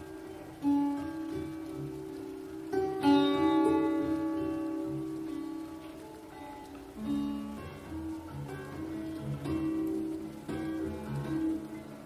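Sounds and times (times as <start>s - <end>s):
acoustic guitar chord ringing: 0.0s - 11.9s.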